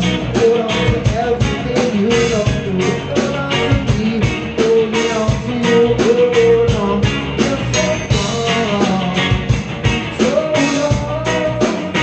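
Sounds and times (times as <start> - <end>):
live rock band playing loud: 0.0 - 12.0.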